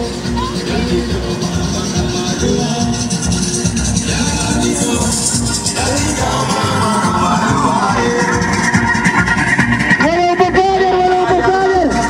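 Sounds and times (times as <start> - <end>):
loud music over loudspeakers: 0.0 - 12.0.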